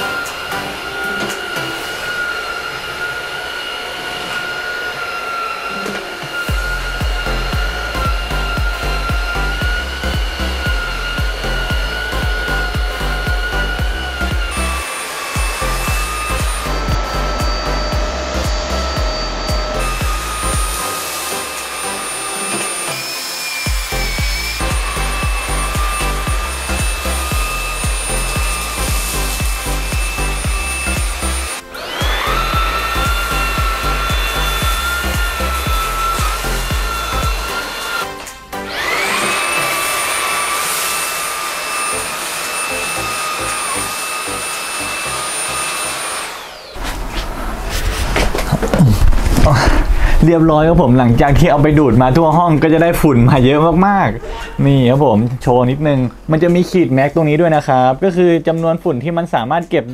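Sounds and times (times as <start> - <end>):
vacuum cleaner motor whine: 0.0 - 50.3
background music with beat: 6.5 - 14.8, 15.4 - 21.3, 23.7 - 39.5.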